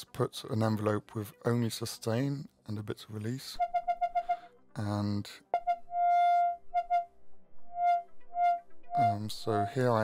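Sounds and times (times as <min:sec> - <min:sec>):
synthesizer notes: 0:05.5 - 0:09.8.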